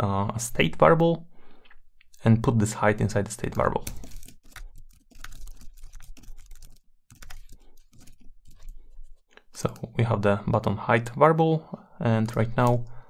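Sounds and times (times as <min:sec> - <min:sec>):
keyboard typing: 0:03.4 - 0:09.9, 0:12.1 - 0:12.9.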